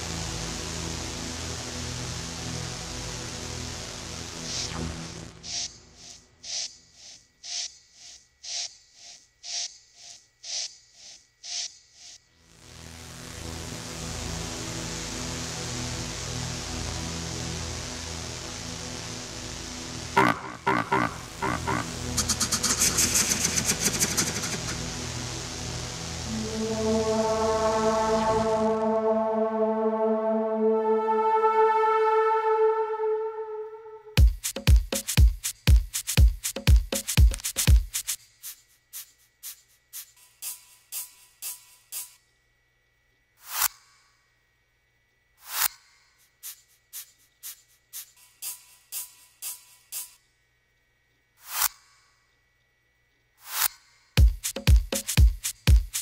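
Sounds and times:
faint steady hum: 5.3 - 34.2, 42.1 - 48.8, 50.1 - 54.2
noise sweeps: 20.2 - 34.2
crisp high ticks: 22.0 - 24.9, 35.0 - 42.2, 46.3 - 50.2.

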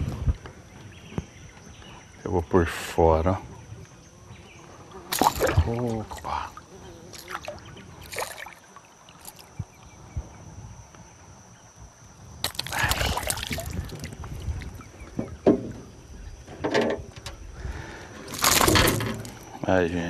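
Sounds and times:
fish splashing at water surface: 5.1 - 6.4, 7.1 - 9.4, 12.4 - 14.8, 18.3 - 19.4
sharp knocks: 15.2 - 15.9.

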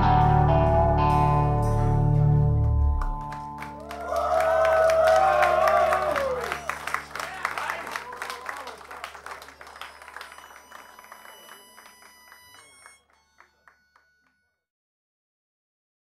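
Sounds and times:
audience applause: 2.6 - 13.8.

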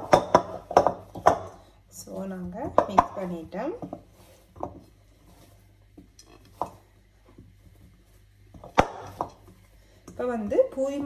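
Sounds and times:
hands kneading dough in glass bowl: 0.0 - 11.0.

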